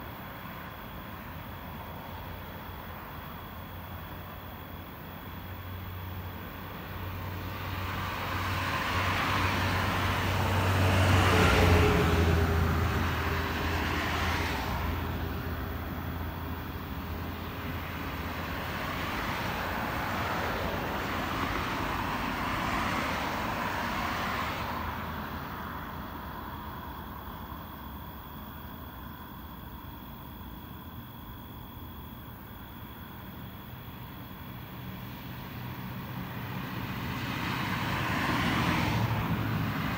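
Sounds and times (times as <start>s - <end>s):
vehicles passing by: 0.0s - 39.9s.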